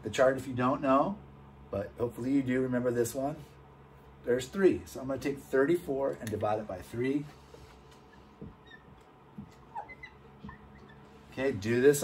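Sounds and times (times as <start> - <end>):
marker squeaking on whiteboard: 7.4 - 11.5.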